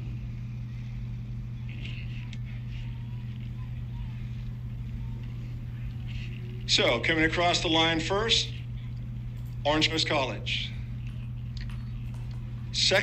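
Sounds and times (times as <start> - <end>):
steady low hum: 0.0 - 13.0
faint voices: 0.5 - 13.0.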